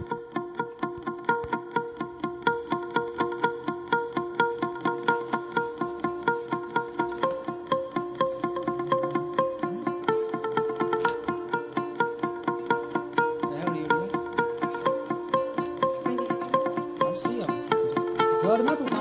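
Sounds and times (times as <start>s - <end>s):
plucked-string music: 0.0s - 19.0s.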